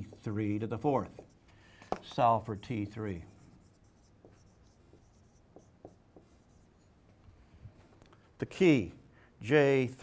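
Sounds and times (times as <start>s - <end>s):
marker writing on whiteboard: 0.0s - 7.2s.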